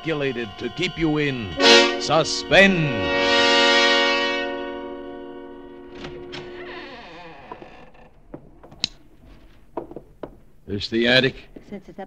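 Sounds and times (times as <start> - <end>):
door creaking open: 5.8 - 10.5
sharp knocks: 7.5 - 10.6.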